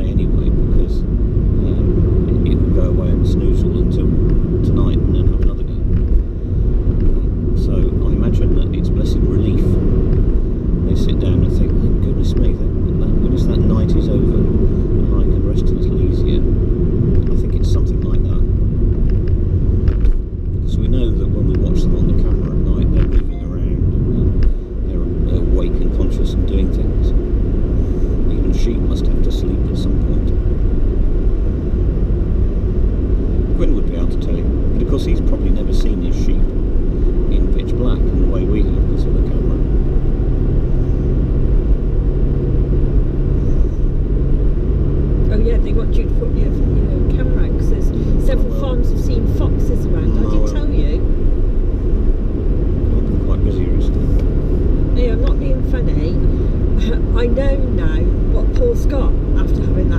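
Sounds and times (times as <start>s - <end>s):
car engine rumble from inside: 0.0s - 59.9s
tyres on road: 0.0s - 59.9s.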